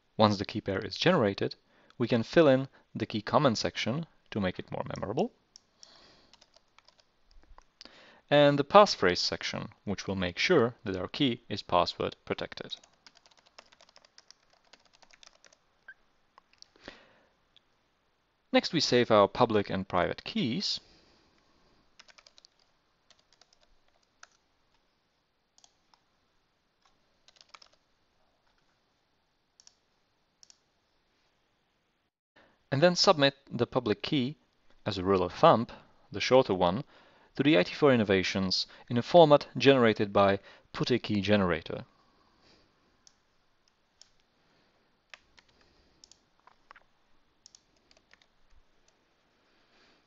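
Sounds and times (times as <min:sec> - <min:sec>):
computer keyboard keystrokes: 0:06.3 - 0:07.7, 0:12.7 - 0:15.6, 0:22.0 - 0:24.4, 0:26.8 - 0:27.8, 0:47.4 - 0:48.3
computer mouse and keyboard clicks: 0:45.1 - 0:48.6.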